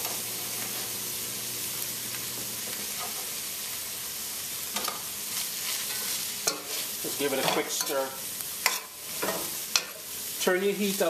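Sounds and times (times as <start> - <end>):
food sizzling in a pan: 0.0 - 11.0
spoon scraping a pan: 2.9 - 3.3, 4.7 - 10.2.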